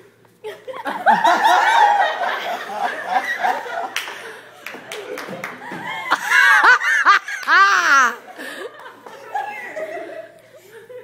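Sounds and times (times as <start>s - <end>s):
people laughing: 0.4s - 11.0s.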